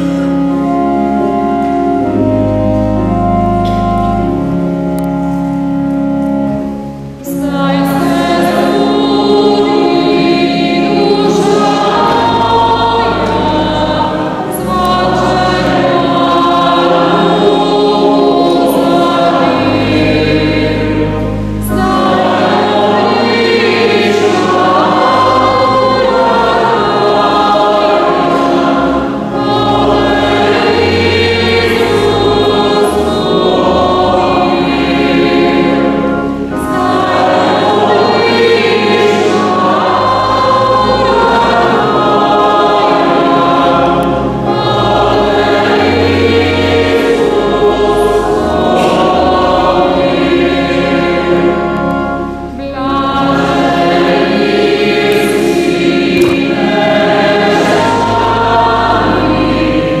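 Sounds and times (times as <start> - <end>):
mixed choir singing a hymn: 0.0 - 60.0
organ bass notes: 0.0 - 60.0.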